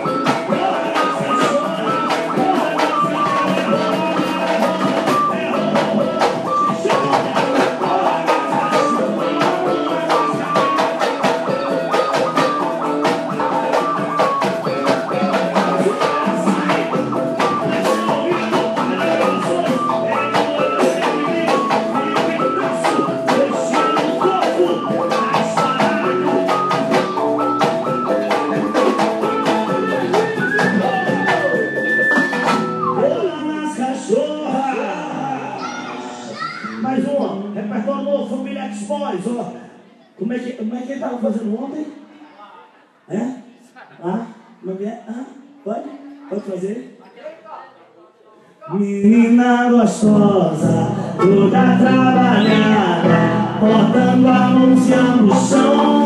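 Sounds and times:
steady drum beat: 0.0 - 33.4, 50.0 - 56.0
electric guitar: 0.0 - 33.8, 49.2 - 56.0
live band playing dance music: 0.0 - 40.2, 49.1 - 56.0.

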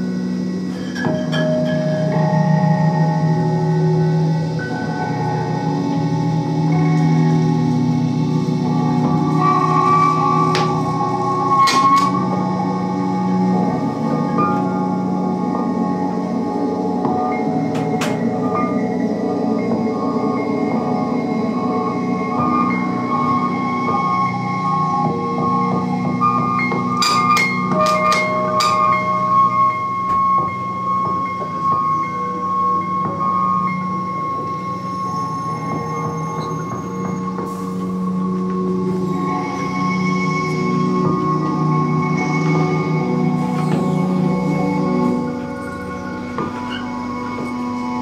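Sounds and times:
ambient electronic drones: 0.0 - 48.0.

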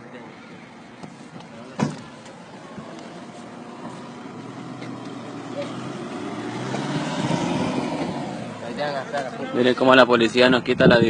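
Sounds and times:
pickup truck engine passing: 1.6 - 10.2.

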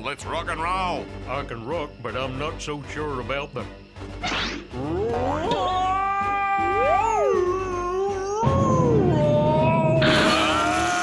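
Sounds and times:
cartoon characters yowling: 4.8 - 11.0.

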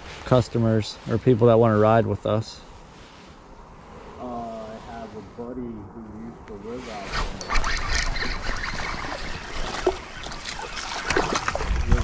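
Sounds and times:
water splashing: 7.1 - 12.0.

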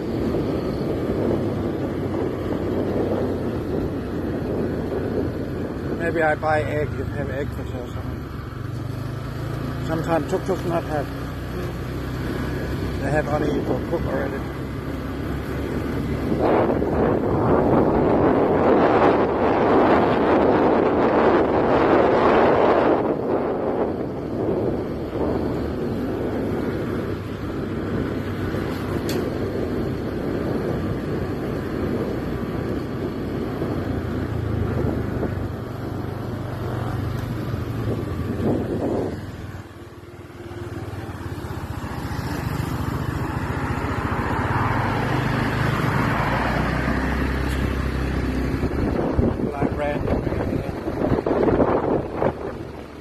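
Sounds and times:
wind rushing over microphone: 0.0 - 53.0.

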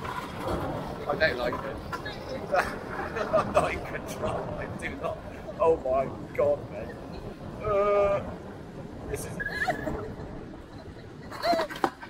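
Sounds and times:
wooden runners scraping on tarmac: 0.0 - 3.5
person crying out: 7.6 - 8.4.

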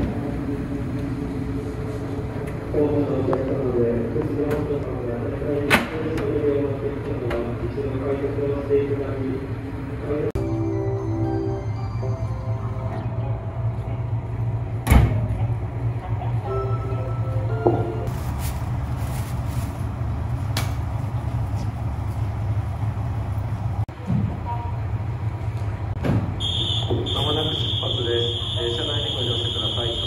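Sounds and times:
diesel railcar engine idling: 0.0 - 30.0.

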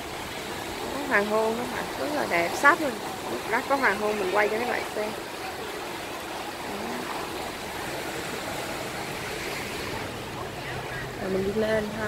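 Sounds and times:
small waves washing onto sand: 0.0 - 12.0.

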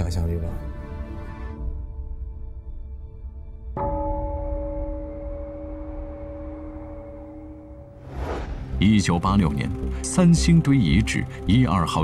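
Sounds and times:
bell-like metallic tone: 3.8 - 8.0.

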